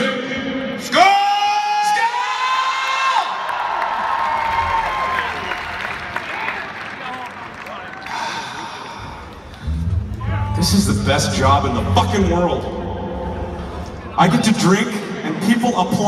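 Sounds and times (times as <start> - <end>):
crowd cheering and whooping: 2.0 - 9.6
applause: 3.4 - 9.7.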